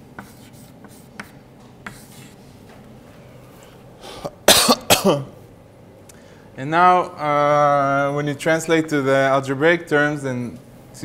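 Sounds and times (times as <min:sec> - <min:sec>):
man coughing: 0:04.0 - 0:05.4.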